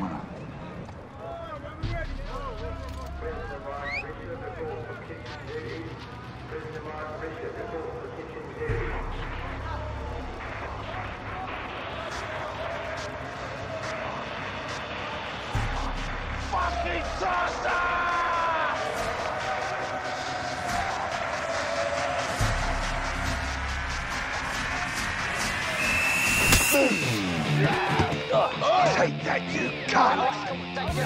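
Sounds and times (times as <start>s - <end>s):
crowd of men jeering: 16.4s - 26.0s, 26.8s - 31.0s.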